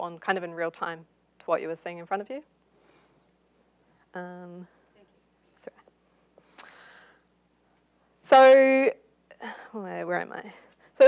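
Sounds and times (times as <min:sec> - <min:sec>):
person breathing in: 0:06.4 - 0:07.3
lip clicks: 0:06.6 - 0:06.8.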